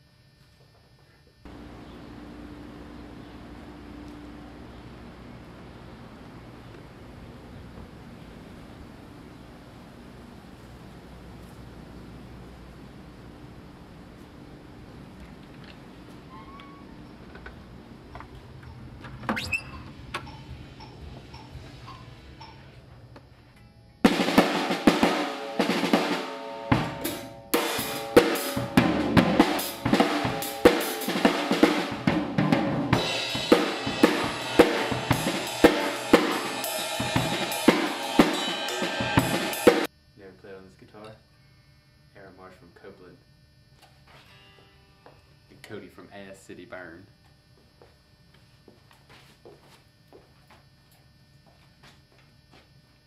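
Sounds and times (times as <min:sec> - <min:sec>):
drum kit playing driving beat: 0:20.2 - 0:22.6, 0:24.0 - 0:39.9.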